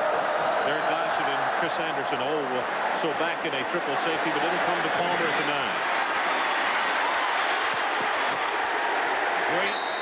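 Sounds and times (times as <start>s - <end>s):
stadium crowd roar: 0.0s - 10.0s
commentator's voice: 0.6s - 5.8s.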